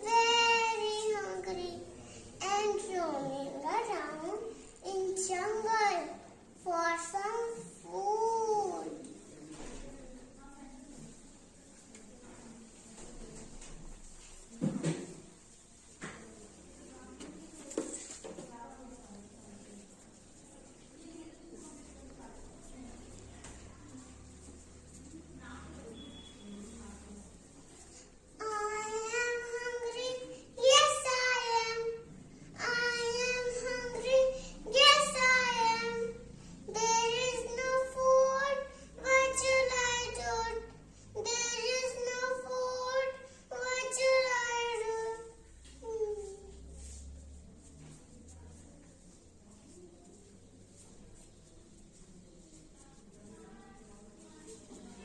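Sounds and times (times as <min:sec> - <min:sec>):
knock: 0:14.6 - 0:15.1.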